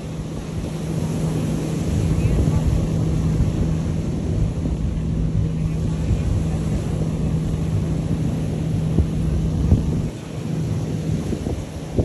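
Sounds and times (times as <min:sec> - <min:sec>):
motorboat engine drone: 0:00.0 - 0:12.0
wind buffeting microphone: 0:00.0 - 0:12.0.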